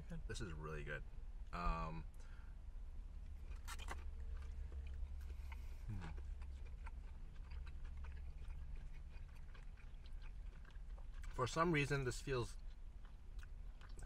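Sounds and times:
people chewing and crunching food: 1.5 - 14.0.

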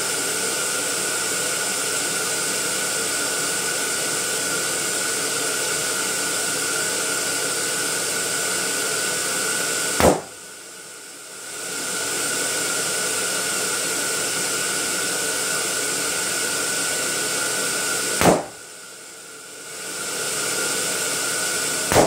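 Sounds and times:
balloon inflator blower running: 0.0 - 22.0
balloon bursting: 10.0 - 10.4, 18.2 - 18.6.

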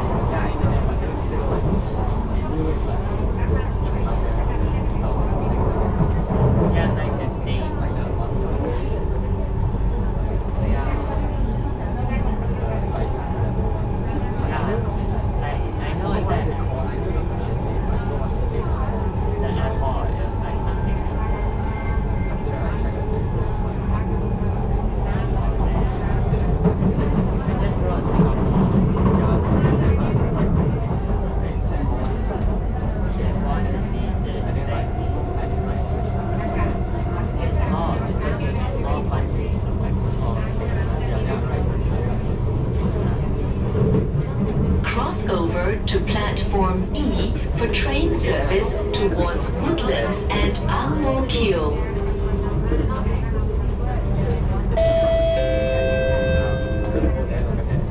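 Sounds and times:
low passenger voices: 0.0 - 57.9
train wheels rumbling on track: 0.0 - 57.9.

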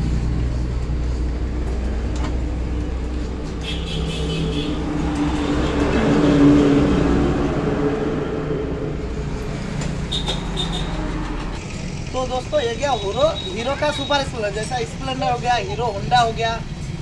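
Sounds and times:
traffic passing: 0.0 - 17.0
vehicle engine humming: 0.0 - 17.0.

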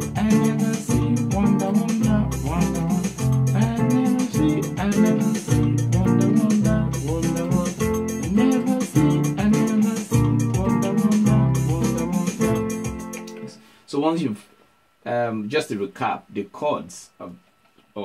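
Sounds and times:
electronic keyboard chord groove: 0.0 - 13.6.

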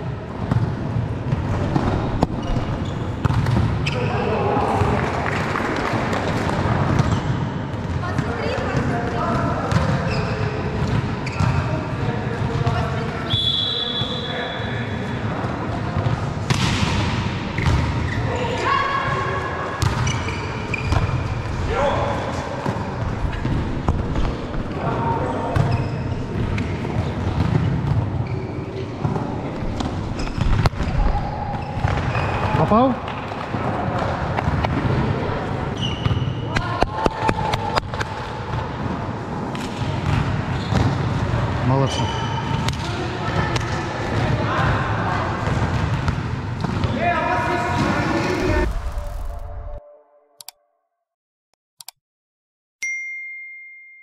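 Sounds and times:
players shouting: 46.9 - 49.6.

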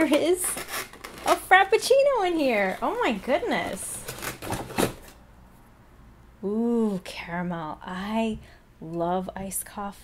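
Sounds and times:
packaging rustling: 0.0 - 5.2.

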